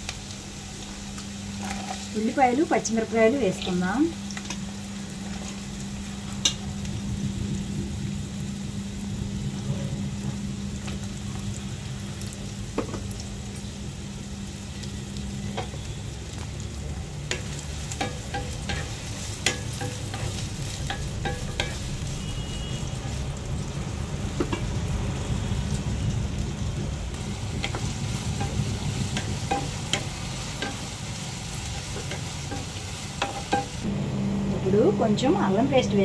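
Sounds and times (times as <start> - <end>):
onions sizzling in oil: 0.0 - 36.0.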